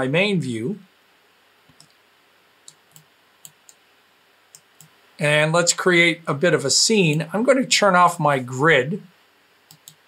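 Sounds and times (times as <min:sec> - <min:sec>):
faint computer mouse clicks: 0:01.7 - 0:02.0, 0:02.6 - 0:03.8, 0:04.5 - 0:05.0, 0:09.7 - 0:10.0.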